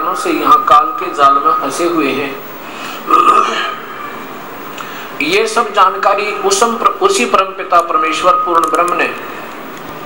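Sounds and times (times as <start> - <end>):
steady background noise: 0.0 - 10.0
man's throaty vocal sound: 3.1 - 4.0.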